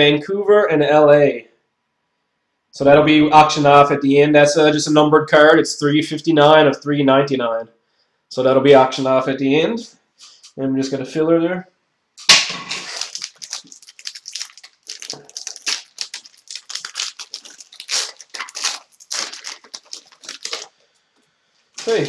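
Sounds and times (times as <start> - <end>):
wrapper tearing: 12.2 - 20.8, 21.7 - 22.0
wrapper crackling and rustling: 12.3 - 20.8, 21.7 - 22.0.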